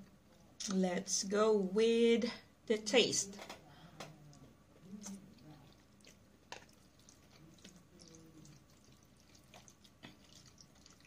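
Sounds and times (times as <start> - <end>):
chewing with mouth clicks: 4.0 - 11.0
slurping noodle: 4.8 - 11.0.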